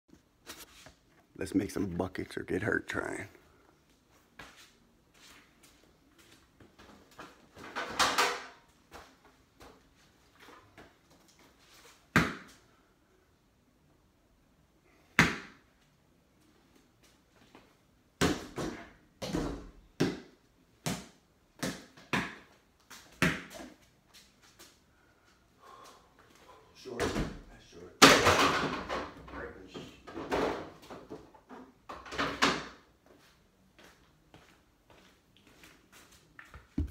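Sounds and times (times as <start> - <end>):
balls bouncing on floor: 18.2 - 22.6, 36.5 - 36.9.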